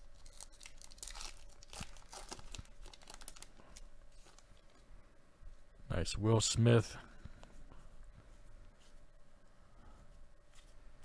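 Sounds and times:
wrapper ripping and crinkling: 0.0s - 4.8s.

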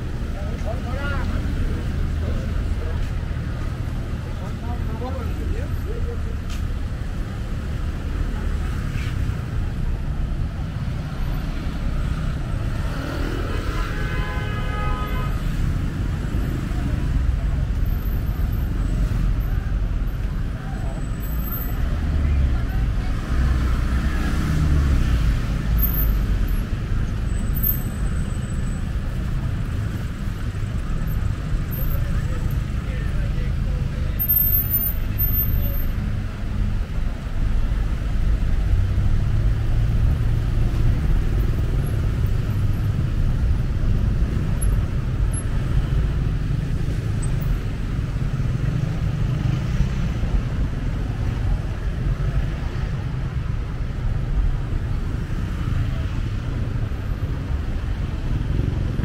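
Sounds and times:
road traffic rumble: 0.0s - 59.0s.

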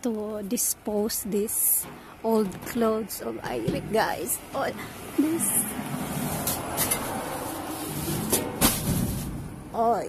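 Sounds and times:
metal hatch rumbling: 1.7s - 5.1s, 5.7s - 9.9s.

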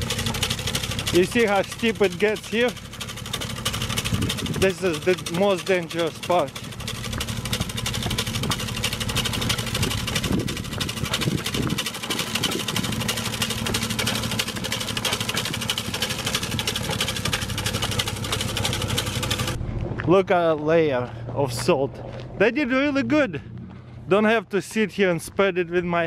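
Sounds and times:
truck engine and spinner humming: 0.0s - 24.9s.

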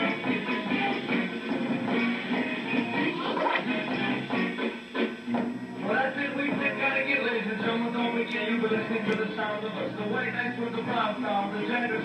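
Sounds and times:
bass guitar: 0.0s - 12.0s
drums: 0.0s - 12.0s
electric guitar: 0.0s - 12.0s.

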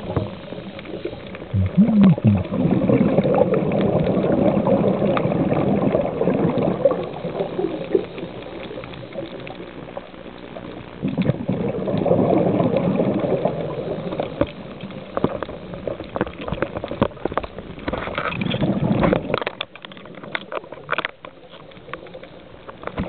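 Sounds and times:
exhaled breath bubbling underwater: 1.0s - 8.1s, 11.0s - 14.1s.

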